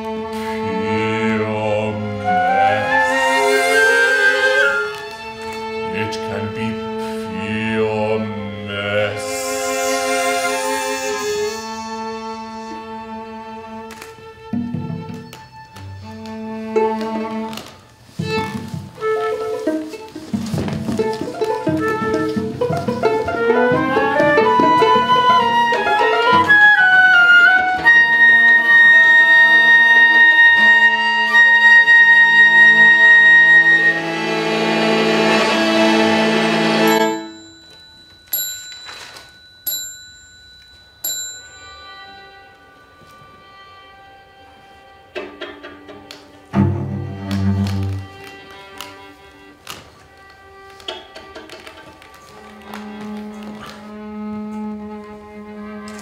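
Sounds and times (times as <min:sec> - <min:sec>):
chamber ensemble playing: 0:00.0 - 0:38.2, 0:41.6 - 0:56.0.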